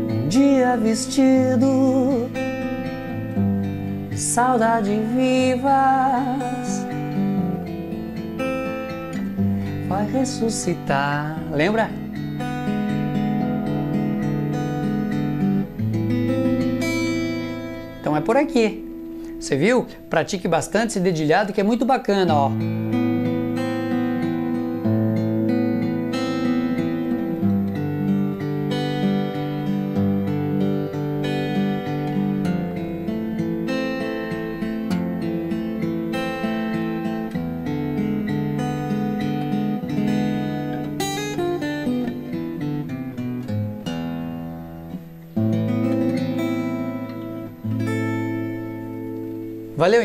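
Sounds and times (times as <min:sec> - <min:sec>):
fingerpicked acoustic guitar: 0:00.0 - 0:50.0.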